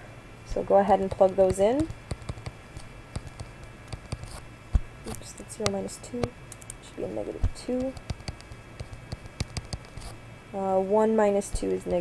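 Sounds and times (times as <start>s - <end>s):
faint low hum: 0.0s - 12.0s
stylus tapping on tablet screen: 1.0s - 6.3s, 7.4s - 10.1s.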